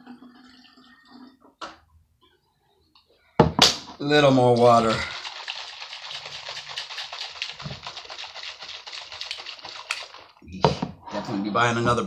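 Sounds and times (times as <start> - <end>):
liquid sloshing in shaker bottle: 4.5 - 10.5.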